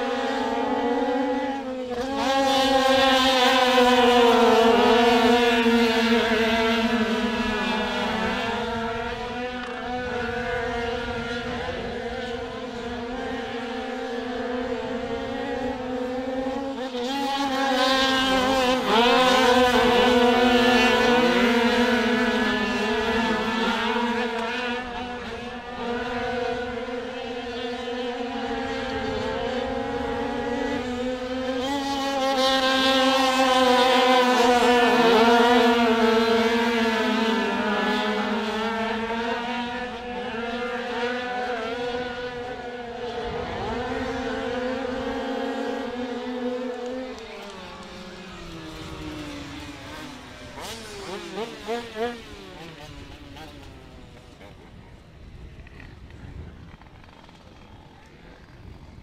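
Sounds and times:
two-stroke bikes racing: 0.0 - 59.0.

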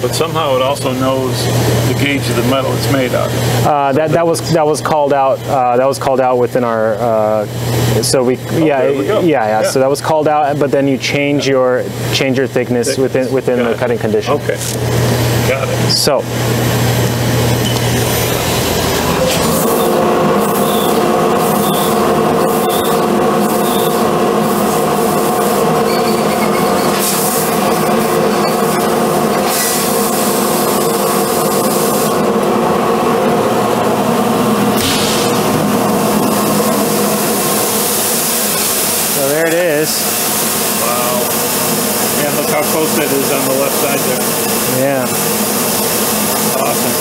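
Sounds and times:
laser cutter machine hum: 0.0 - 47.0.

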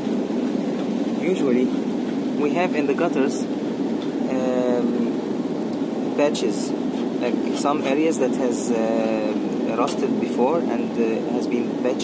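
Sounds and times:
steady rushing noise: 0.0 - 12.0
man saying um: 4.2 - 5.2, 6.2 - 12.0.

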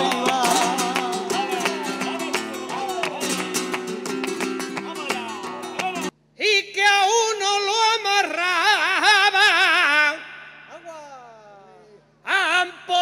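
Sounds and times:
flamenco guitar playing: 0.0 - 6.1
hands clapping a beat: 0.0 - 6.1
man singing with vibrato: 0.0 - 13.0.

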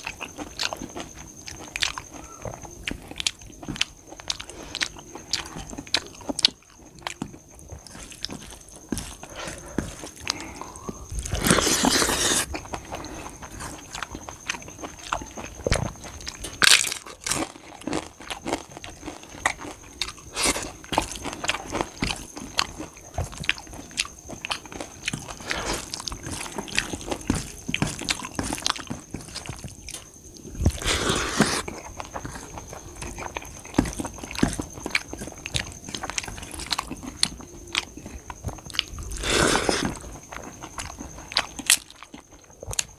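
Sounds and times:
chewing: 0.0 - 42.9.

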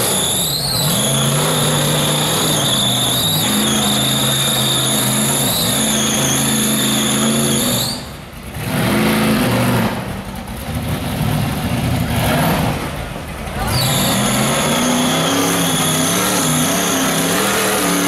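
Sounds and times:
buggy engine revving: 0.0 - 18.0.

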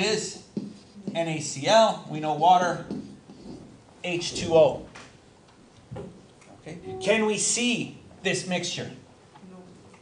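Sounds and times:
man speaking: 6.6 - 9.0.

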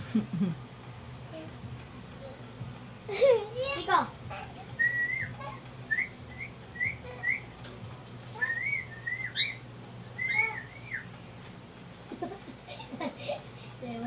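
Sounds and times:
cockatiel whistling: 4.8 - 7.5, 8.4 - 9.6, 10.2 - 11.1.

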